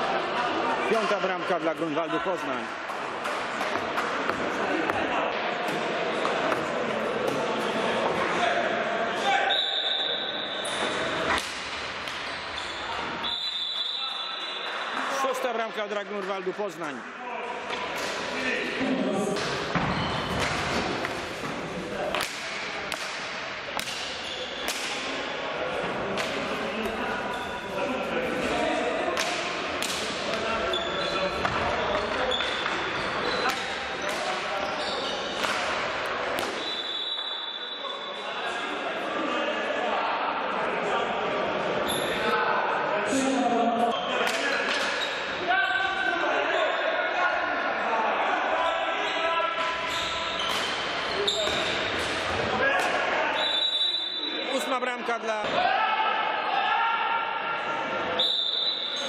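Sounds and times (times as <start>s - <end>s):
hockey sticks striking ball: 2.9s - 7.5s, 19.4s - 25.2s, 29.1s - 30.5s, 31.3s - 36.7s, 49.6s - 53.0s.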